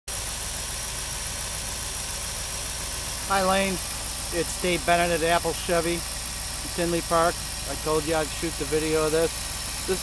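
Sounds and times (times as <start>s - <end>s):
car engine idling: 0.1s - 10.0s.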